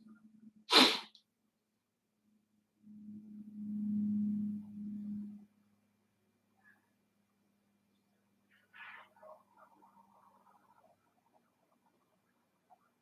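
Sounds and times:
person sneezing: 0:00.7 - 0:01.1
low steady hum: 0:02.4 - 0:12.9.

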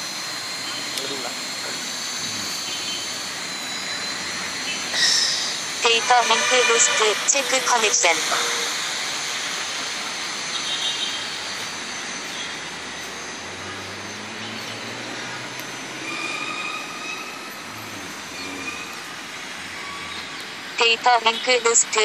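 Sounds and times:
drone propellers whirring: 0:00.0 - 0:20.9.

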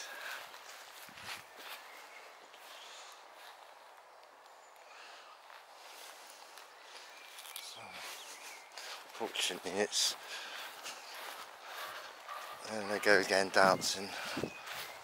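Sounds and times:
footsteps in long grass: 0:00.0 - 0:04.6, 0:05.4 - 0:15.0.

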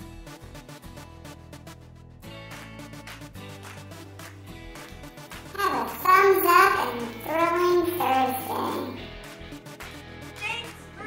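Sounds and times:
background music: 0:00.0 - 0:11.0
child singing: 0:05.6 - 0:09.0.

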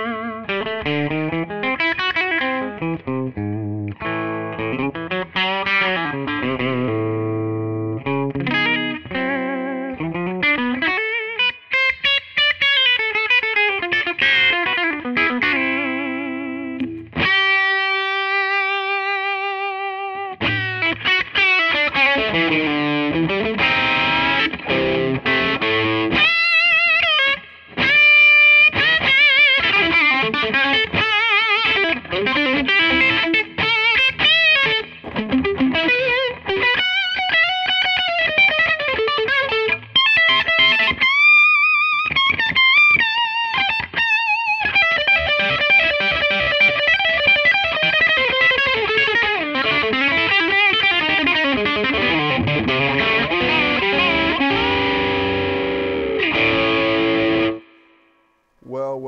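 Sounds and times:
overdriven electric guitar lead: 0:00.0 - 0:58.1.

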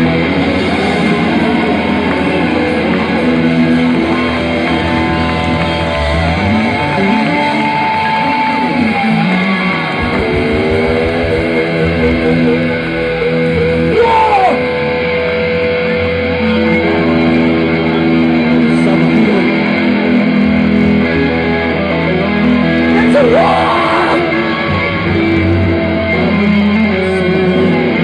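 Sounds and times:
electric guitar bending notes: 0:00.0 - 0:28.0
live heavy band playing: 0:00.0 - 0:28.0.

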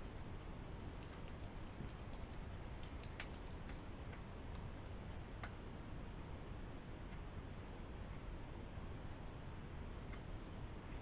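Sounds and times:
small clicks: 0:00.0 - 0:05.6.

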